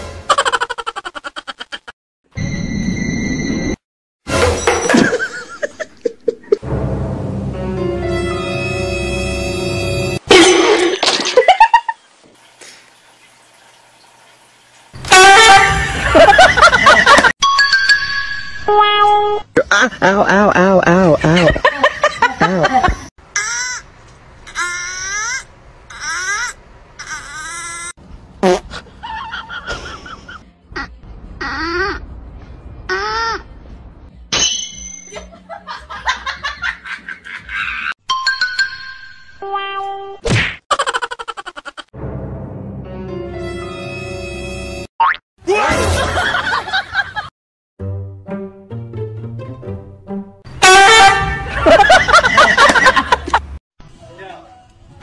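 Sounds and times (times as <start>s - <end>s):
loud horn-like honk: 8.0s - 10.2s, 15.0s - 16.2s, 50.5s - 51.6s.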